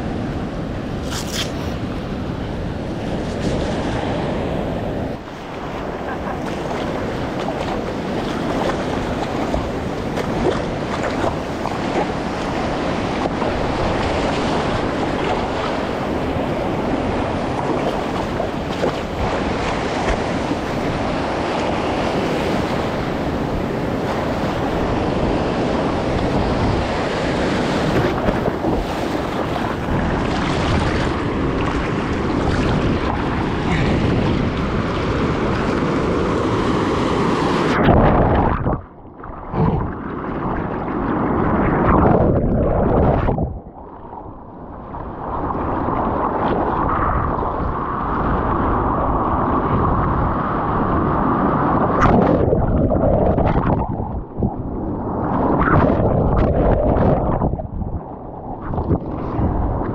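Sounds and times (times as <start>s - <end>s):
wind buffeting microphone: 0.0s - 59.9s
surf breaking over reef: 2.7s - 44.3s, 45.1s - 59.9s
water washing around: 5.2s - 44.1s.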